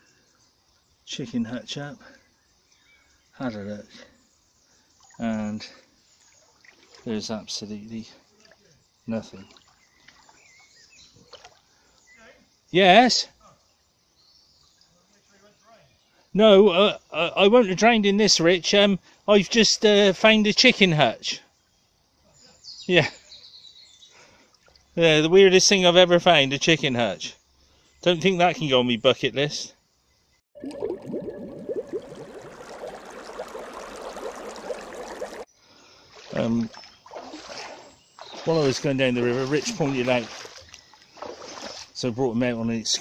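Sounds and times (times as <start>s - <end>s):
stream water babbling: 4.5s - 12.2s, 30.6s - 42.1s.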